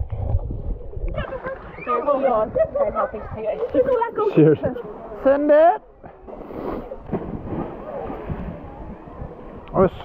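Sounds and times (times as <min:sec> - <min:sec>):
wind buffeting microphone: 0:00.0 - 0:04.6, 0:07.0 - 0:10.0.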